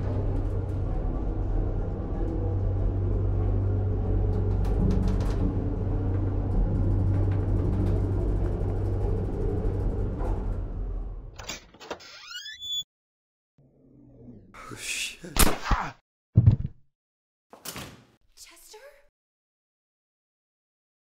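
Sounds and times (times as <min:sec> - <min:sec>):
elevator car rumbling: 0:00.0 - 0:11.6
film score music: 0:00.0 - 0:11.6.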